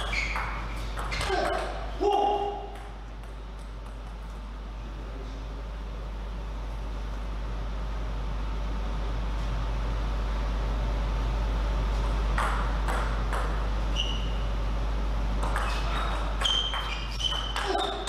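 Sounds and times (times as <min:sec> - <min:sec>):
table tennis ball pings: 0:00.0 - 0:01.7, 0:15.4 - 0:18.0.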